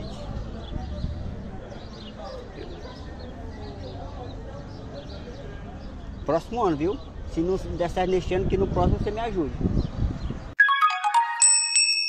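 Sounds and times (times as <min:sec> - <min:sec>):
outdoor background noise: 0:00.0 - 0:10.6
electronic chime jingle: 0:10.6 - 0:12.0.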